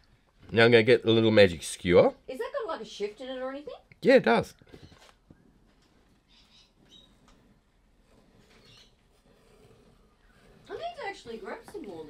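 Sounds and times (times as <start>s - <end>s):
faint scratchy rustles: 4.6s - 12.0s.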